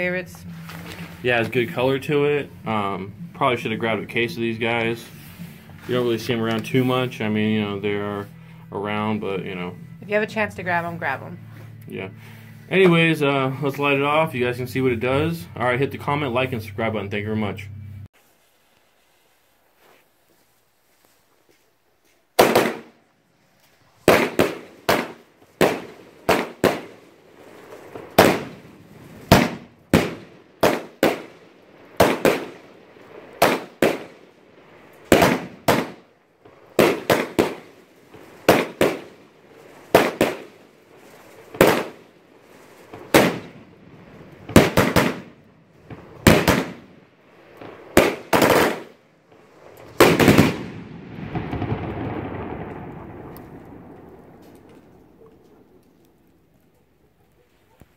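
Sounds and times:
fireworks reports: 0.0s - 18.1s, 22.4s - 23.0s, 24.0s - 56.0s
rumble after fireworks: 0.0s - 57.9s.

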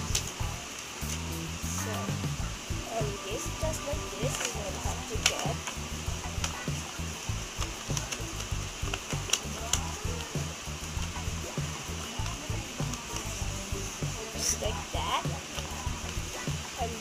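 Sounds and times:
background music: 0.0s - 17.0s
paper rustling and crinkling: 4.2s - 5.8s, 7.6s - 10.2s
sharp paper crackles: 4.2s - 5.8s, 7.6s - 11.0s.

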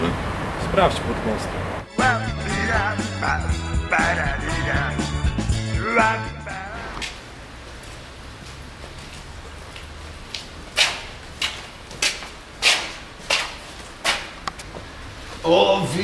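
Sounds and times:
music with singing: 1.9s - 7.1s
footsteps on paved path: 7.0s - 15.5s.

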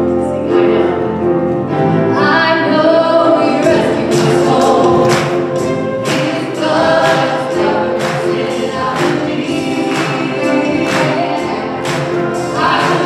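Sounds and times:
keyboards: 0.0s - 13.0s
singers: 2.0s - 13.0s.

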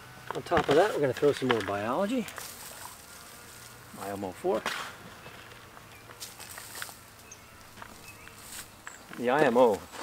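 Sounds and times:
soil being scattered by hand: 0.4s - 7.0s.

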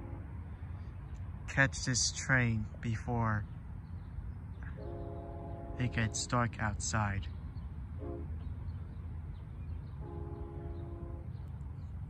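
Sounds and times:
distant locomotive horn: 0.0s - 0.6s, 4.6s - 6.7s, 8.0s - 8.4s, 10.0s - 11.5s.

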